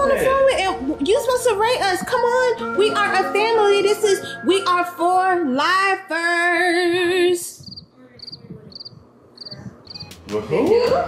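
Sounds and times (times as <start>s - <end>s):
cricket chirping: 7.6s - 10.1s.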